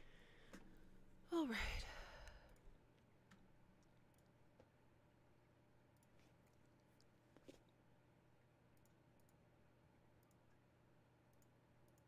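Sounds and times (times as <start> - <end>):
steady low hum: 0.0 - 7.2
faint clicks: 2.2 - 4.7, 8.7 - 9.4, 10.2 - 10.6, 11.3 - 12.0.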